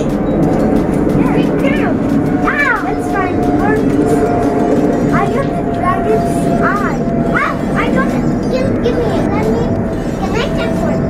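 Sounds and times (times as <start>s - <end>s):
low mechanical drone: 0.0s - 11.0s.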